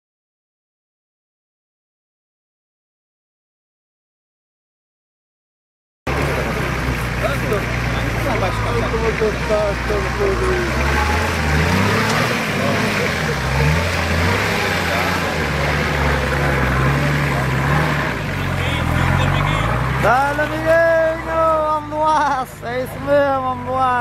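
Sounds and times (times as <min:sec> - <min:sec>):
off-road vehicle engine revving: 0:06.1 - 0:24.0
spectators' voices: 0:06.1 - 0:24.0.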